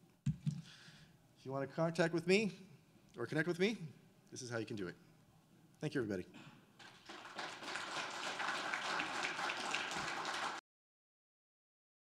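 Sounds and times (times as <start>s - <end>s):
audience applauding: 6.8s - 10.6s.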